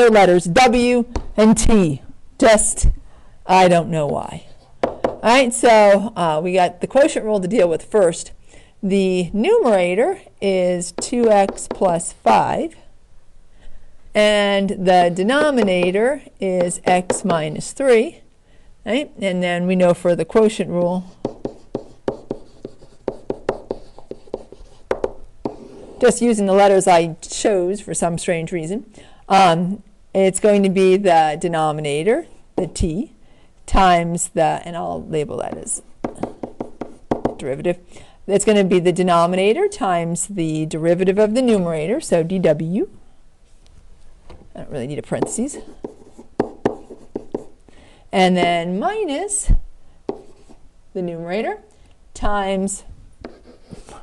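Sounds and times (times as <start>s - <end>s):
stylus tapping on whiteboard: 4.8s - 5.2s, 11.0s - 11.9s, 15.3s - 16.0s, 16.6s - 17.4s, 21.2s - 25.8s, 35.5s - 37.4s, 45.2s - 47.5s, 50.1s - 50.6s.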